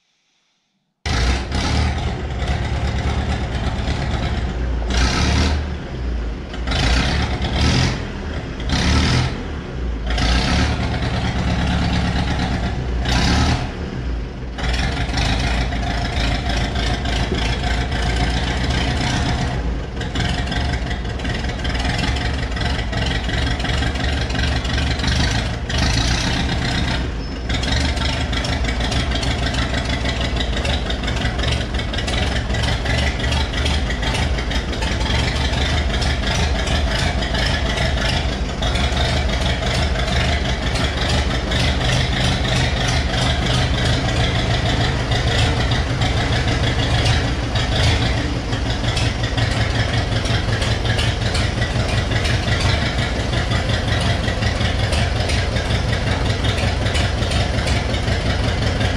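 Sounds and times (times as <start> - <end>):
diesel engine rumbling: 1.0 - 58.9.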